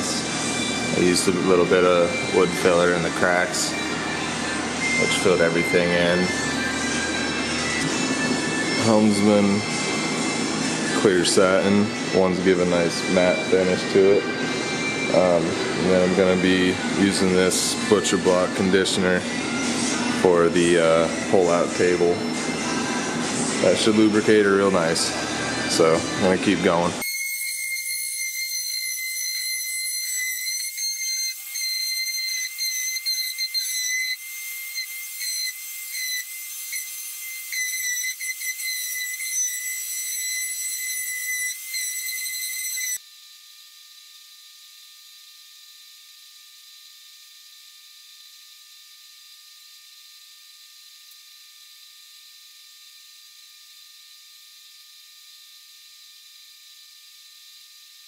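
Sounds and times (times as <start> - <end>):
orbital sander whine: 0.0 - 58.0.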